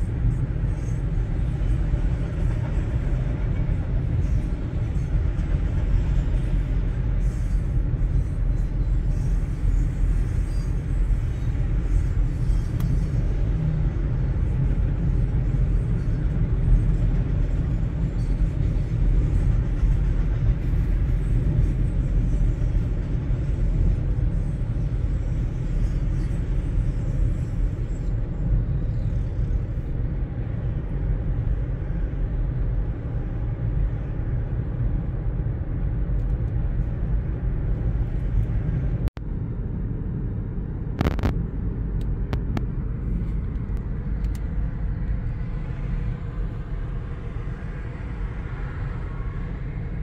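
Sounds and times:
car interior road rumble: 0.0s - 50.0s.

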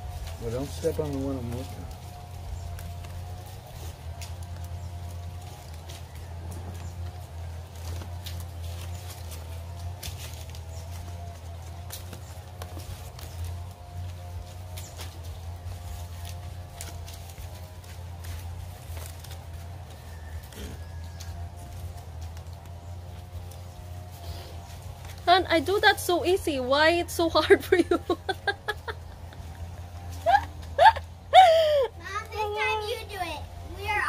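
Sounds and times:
palm leaves clicking and crackling: 0.0s - 34.0s
steady low hum: 0.0s - 34.0s.

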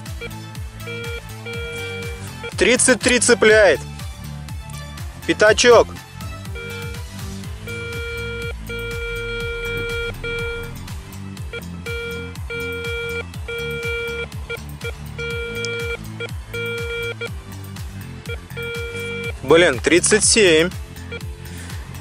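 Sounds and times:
plucked guitar background music: 0.0s - 4.9s
metal detector beeping: 0.2s - 2.6s, 6.6s - 7.0s, 7.7s - 10.8s, 11.5s - 17.3s, 18.3s - 19.4s.

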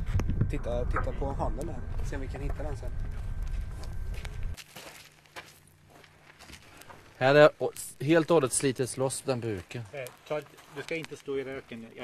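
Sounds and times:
low rumble: 0.0s - 4.6s
footsteps on gravel: 2.5s - 7.1s, 9.4s - 11.9s.

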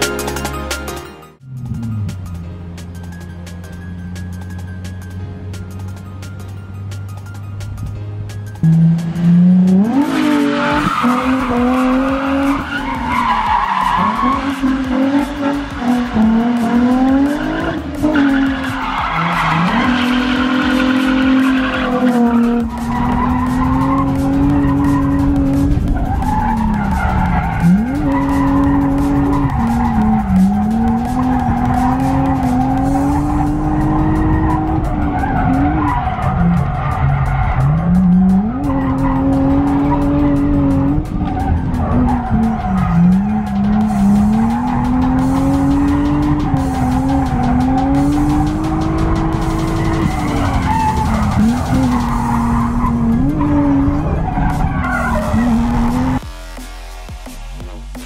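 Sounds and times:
tyres skidding on asphalt: 1.4s - 56.3s
car engine at high revs: 8.6s - 56.3s.

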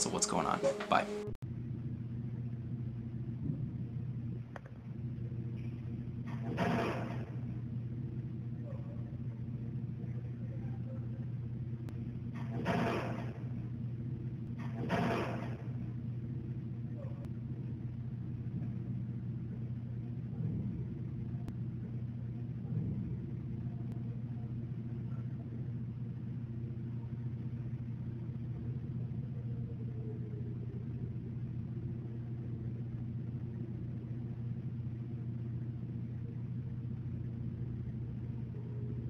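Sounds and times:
low electrical hum: 0.0s - 39.0s.

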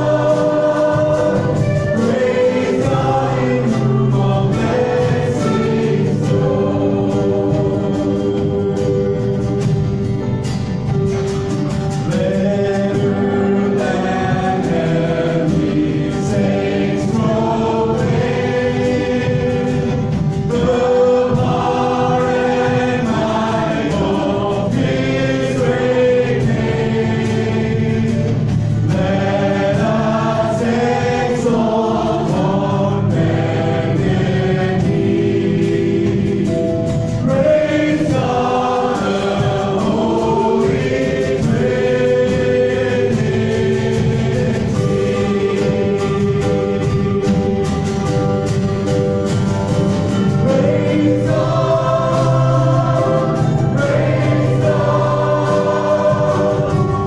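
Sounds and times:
drum and cymbal hits: 0.0s - 57.0s
strummed acoustic guitar: 0.0s - 57.0s
man singing: 12.0s - 34.4s.

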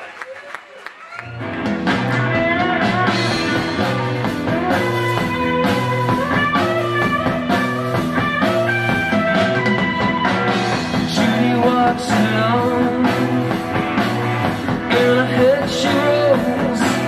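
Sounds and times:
bass guitar: 1.2s - 17.0s
electric guitar: 1.2s - 17.0s
drum kit: 1.3s - 17.0s.

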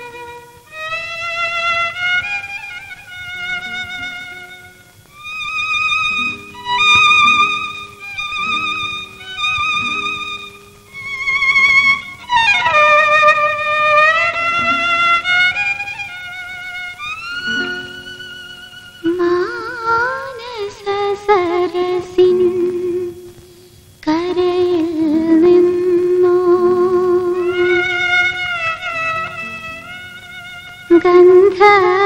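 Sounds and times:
low accompanying notes: 0.0s - 23.4s
solo violin melody: 0.0s - 32.0s.

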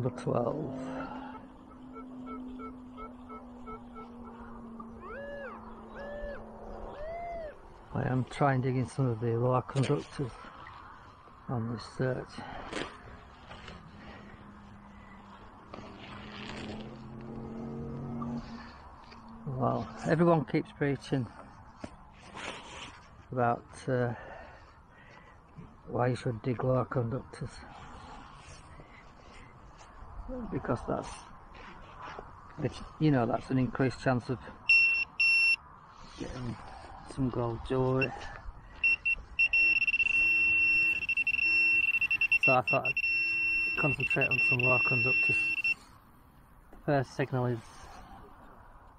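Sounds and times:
metal detector low hum: 0.0s - 6.4s, 38.8s - 46.0s
high electronic beeping tone: 0.9s - 4.3s, 38.8s - 45.8s.

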